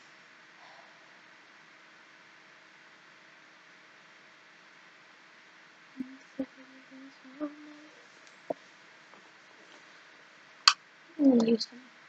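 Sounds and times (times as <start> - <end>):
person humming a tune: 6.0 - 8.0.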